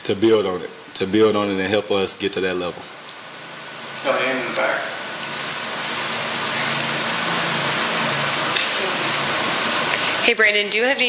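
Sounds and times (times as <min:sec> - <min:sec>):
room and microphone hiss: 0:00.0 - 0:11.0.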